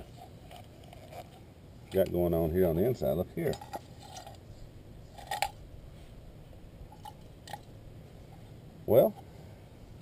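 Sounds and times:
crunchy scrape of aluminum can: 0.0s - 1.4s, 5.1s - 5.6s.

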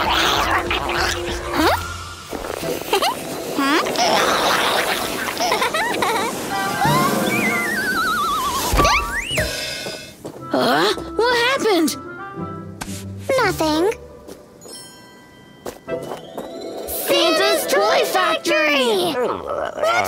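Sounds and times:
cartoon music: 6.7s - 9.4s
wavering whistle sliding down: 6.8s - 9.5s
swooping whistles: 6.8s - 9.6s.

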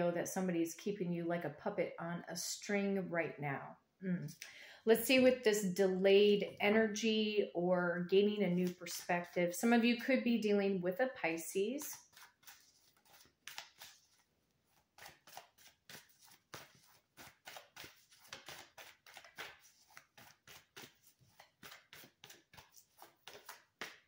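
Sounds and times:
cards being shuffled: 8.5s - 9.4s, 11.8s - 24.0s.

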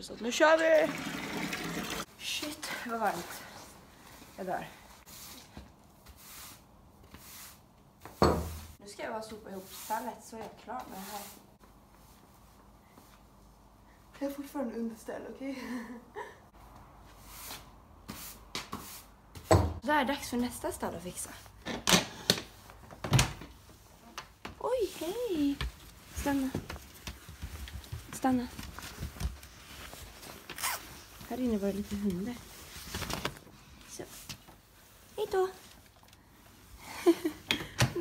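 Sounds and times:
broom sweeping floor: 3.0s - 13.4s, 17.0s - 19.8s.

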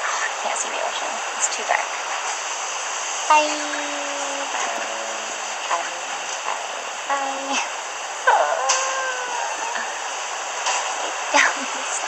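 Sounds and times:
person's voice: 0.0s - 2.0s, 3.3s - 7.7s, 8.3s - 10.2s, 11.2s - 12.0s.

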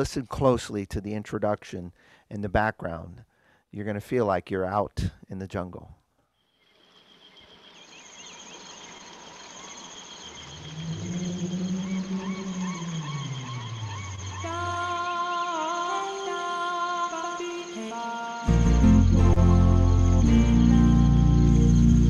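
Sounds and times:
insect-like chirr: 6.2s - 22.0s
warbling bird-like calls: 6.6s - 15.8s
low falling swell: 10.3s - 15.0s
held organ chord tones: 10.6s - 22.0s.

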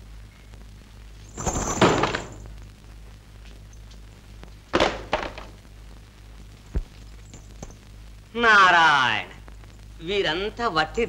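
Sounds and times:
low film soundtrack hum: 0.0s - 11.0s.

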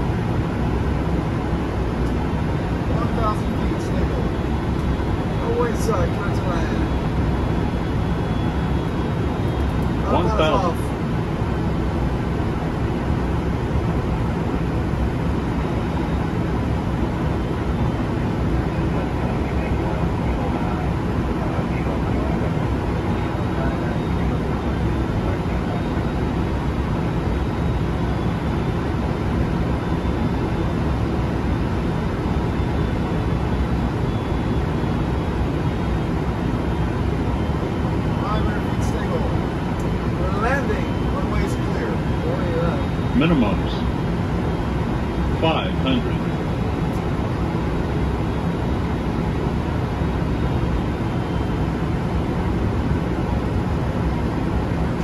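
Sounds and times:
airflow and engine noise: 0.0s - 55.0s.

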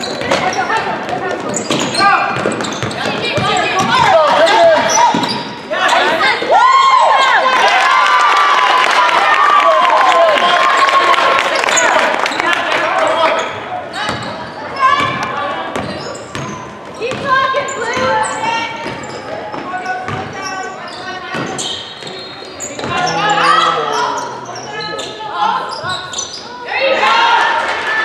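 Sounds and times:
sneaker squeaks: 0.0s - 6.4s, 13.2s - 27.0s
voices echoing in gymnasium: 0.0s - 28.0s
basketball bouncing on hardwood: 17.1s - 17.4s.

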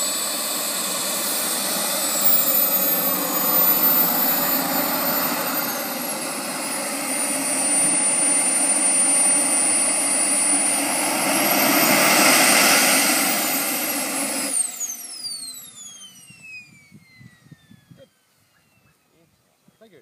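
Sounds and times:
turbine engine whine: 0.0s - 20.0s
turbine spooling down: 0.0s - 20.0s.

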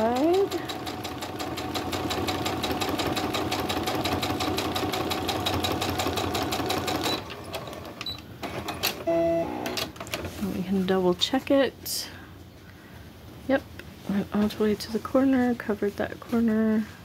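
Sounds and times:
sewing machine stitching: 0.0s - 9.9s.

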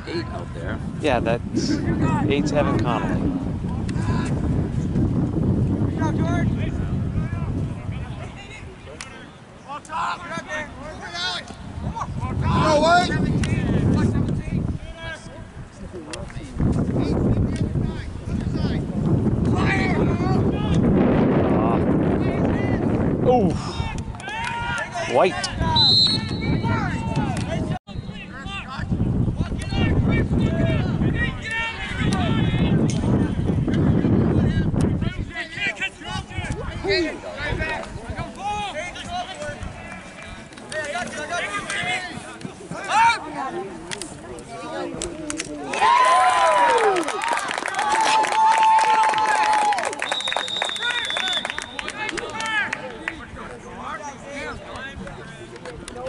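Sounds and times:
wind buffeting microphone: 0.0s - 9.0s, 10.4s - 40.5s
people shouting and calling: 22.2s - 33.5s, 34.4s - 43.7s, 44.5s - 49.8s
loud shout: 23.7s - 27.4s, 45.6s - 50.1s.

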